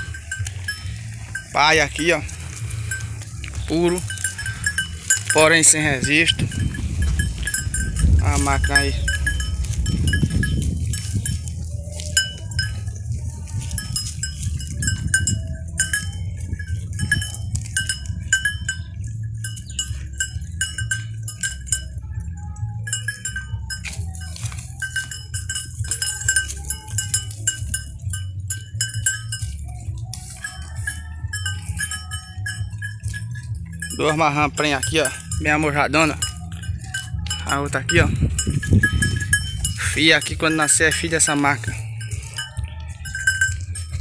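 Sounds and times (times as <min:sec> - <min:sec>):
sheep feeding: 0:00.0 - 0:44.0
small bell clinking: 0:00.0 - 0:44.0
steady low rumble: 0:00.0 - 0:44.0.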